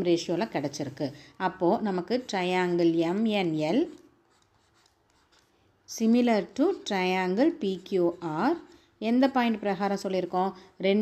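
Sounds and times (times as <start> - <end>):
writing scratches on touchscreen: 1.8 - 5.7, 6.4 - 8.9.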